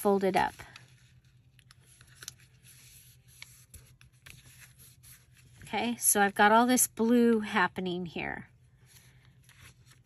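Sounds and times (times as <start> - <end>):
paper rustling: 0.0 - 5.7, 8.8 - 10.0
low steady hum: 0.0 - 10.0.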